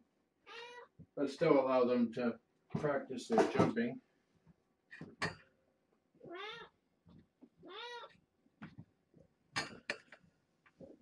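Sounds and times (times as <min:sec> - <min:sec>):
cat meowing: 0:00.4 - 0:01.0, 0:06.2 - 0:06.8, 0:07.6 - 0:08.2.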